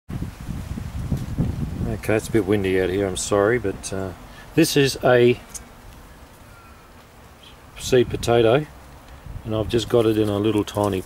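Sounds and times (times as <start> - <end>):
wind buffeting microphone: 0.1 - 3.5, 7.8 - 11.0.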